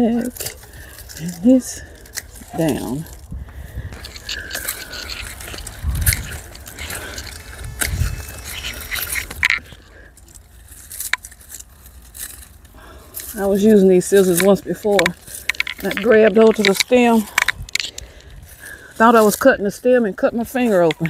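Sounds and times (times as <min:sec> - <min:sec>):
low rumbles: 0:00.0 - 0:19.1
dry foliage rustling: 0:00.0 - 0:21.0
garden scissors snipping stems: 0:03.9 - 0:21.0.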